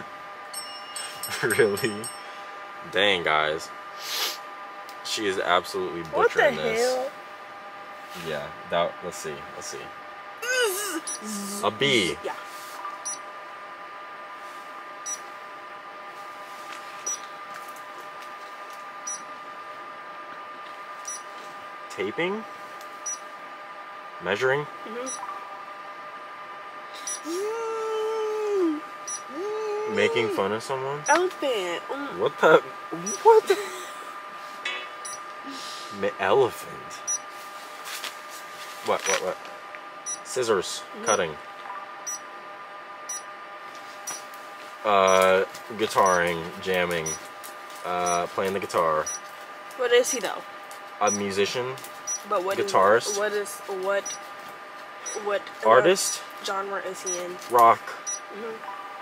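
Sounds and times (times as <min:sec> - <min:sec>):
electrical hum: 0:00.0 - 0:59.0
high electronic beeps: 0:46.0 - 0:46.2, 0:48.0 - 0:48.3, 0:55.0 - 0:55.3.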